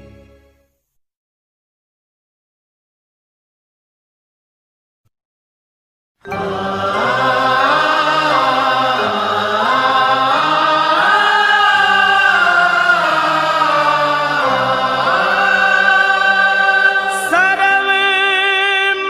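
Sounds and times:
person singing long gliding notes: 0:06.3 - 0:19.0
steady sustained drone: 0:06.4 - 0:18.2.

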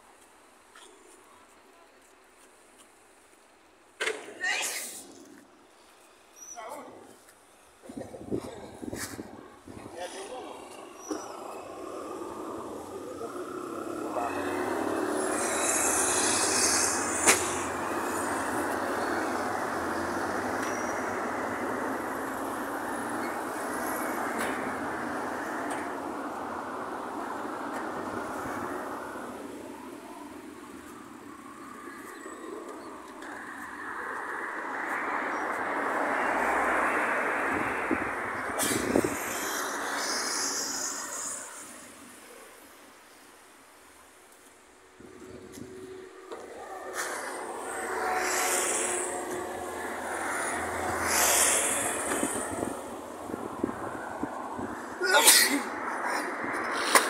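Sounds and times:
road traffic passing: 0:00.0 - 0:57.0.

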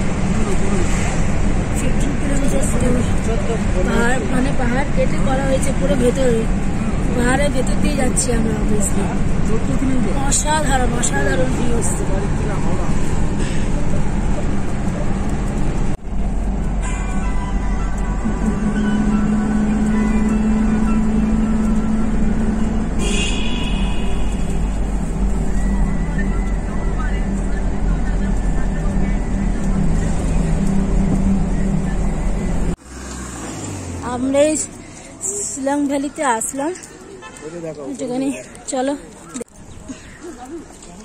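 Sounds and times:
car cabin road rumble: 0:00.0 - 0:37.2.

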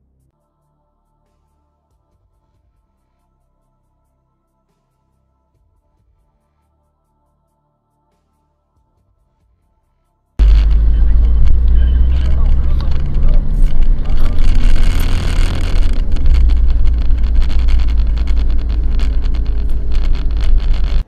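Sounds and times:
car engine and road rumble: 0:10.4 - 0:21.0.

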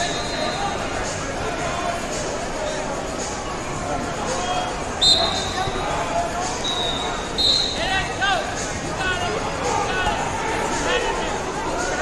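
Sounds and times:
referee whistle blasts: 0:00.0 - 0:00.7, 0:05.0 - 0:05.8, 0:06.6 - 0:08.0
crowd chatter and shouts: 0:00.0 - 0:12.0.

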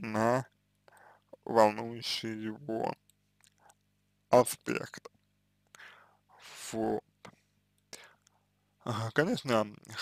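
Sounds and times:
man speaking: 0:00.0 - 0:00.5, 0:01.3 - 0:03.0, 0:04.3 - 0:05.1, 0:06.4 - 0:07.1, 0:08.8 - 0:10.0
faint low hum: 0:00.0 - 0:10.0
short breath in: 0:05.8 - 0:06.4.

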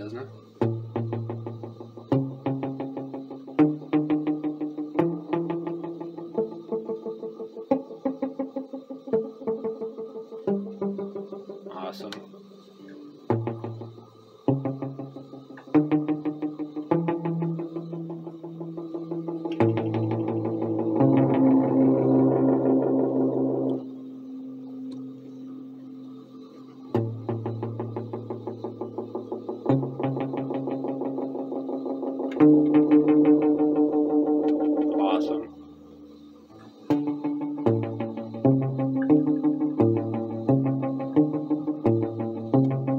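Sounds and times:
electric guitar chords with echo: 0:00.0 - 0:42.9.

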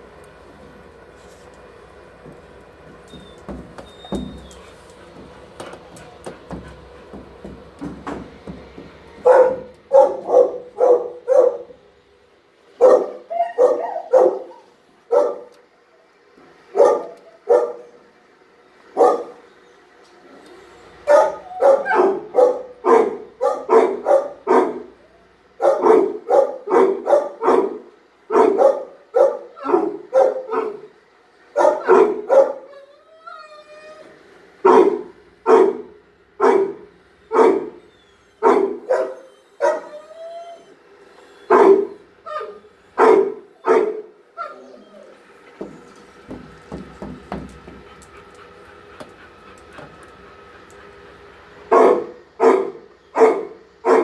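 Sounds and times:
dog whining: 0:03.0 - 0:05.1, 0:12.9 - 0:15.4, 0:31.6 - 0:34.2, 0:37.2 - 0:45.9
dogs barking: 0:09.1 - 0:11.8, 0:12.8 - 0:15.6, 0:16.7 - 0:18.0, 0:18.9 - 0:19.6, 0:21.0 - 0:32.9, 0:34.6 - 0:40.1, 0:41.4 - 0:54.0.

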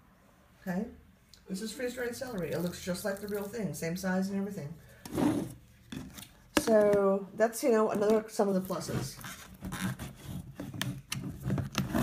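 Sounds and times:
scraping rub: 0:05.0 - 0:06.1.

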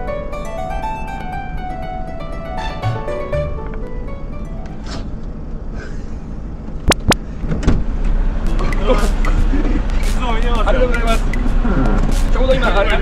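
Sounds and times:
diesel truck engine idling: 0:00.0 - 0:13.0
man talking: 0:10.0 - 0:11.3, 0:12.3 - 0:13.0.

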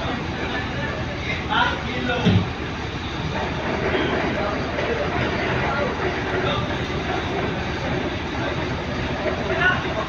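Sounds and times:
people's voices: 0:00.0 - 0:10.0
steady rumbling background: 0:00.0 - 0:10.0.

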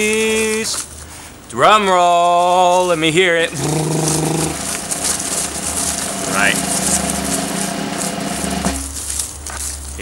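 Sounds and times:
man vocalizing a drum roll: 0:03.4 - 0:04.8, 0:05.5 - 0:08.8.

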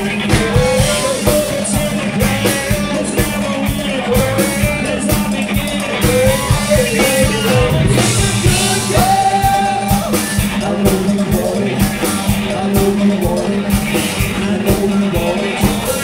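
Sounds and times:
drum kit beat: 0:00.0 - 0:16.0
electric guitars: 0:00.0 - 0:16.0
man singing: 0:00.0 - 0:16.0.

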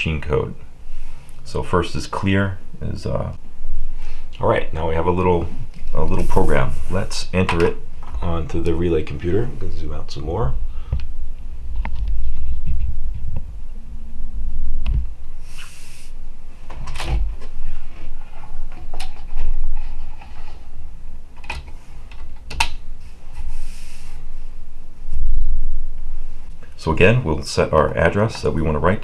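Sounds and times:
short hissy scrapes: 0:06.2 - 0:07.2, 0:15.4 - 0:16.2, 0:23.0 - 0:24.2.

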